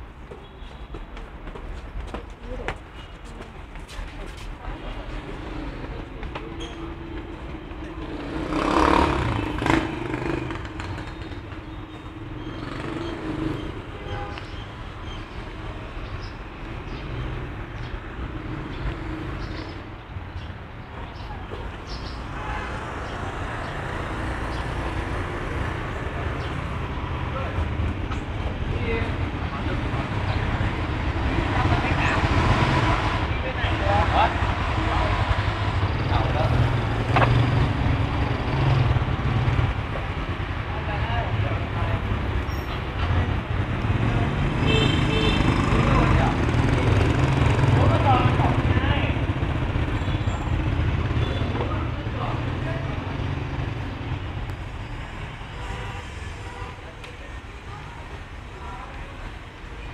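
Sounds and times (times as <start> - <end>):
distant traffic rumble: 0.0 - 59.9.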